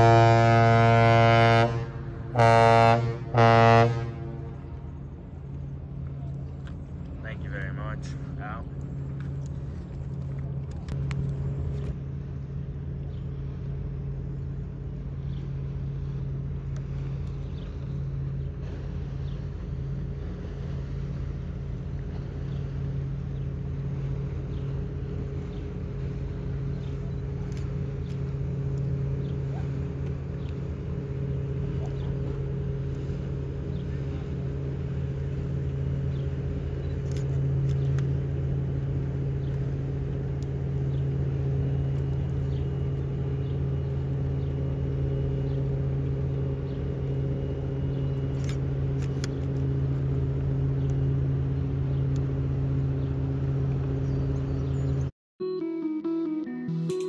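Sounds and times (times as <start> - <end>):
ship engines droning: 0.0 - 57.0.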